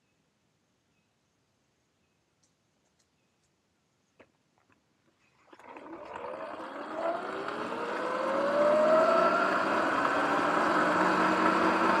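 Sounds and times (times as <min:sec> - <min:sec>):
electric motor whine: 0:05.5 - 0:12.0.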